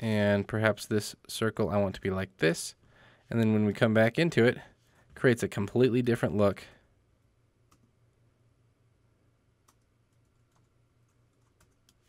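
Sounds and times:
faint low room hum: 0:00.0 - 0:12.0.

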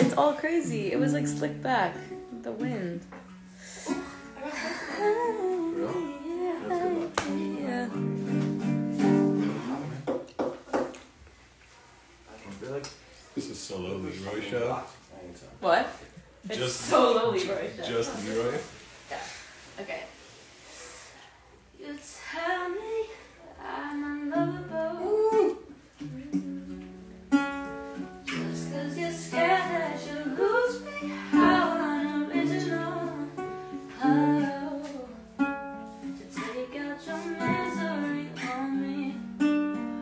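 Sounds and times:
woman singing: 0:00.0 - 0:03.2, 0:03.9 - 0:08.4, 0:21.8 - 0:27.1, 0:28.2 - 0:40.0
acoustic guitar notes: 0:00.0 - 0:10.3, 0:22.4 - 0:40.0.

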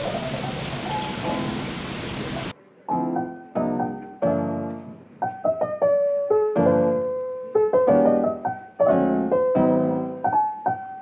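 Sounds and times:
aquarium water hissing: 0:00.0 - 0:02.5
faint background music: 0:02.5 - 0:11.0.

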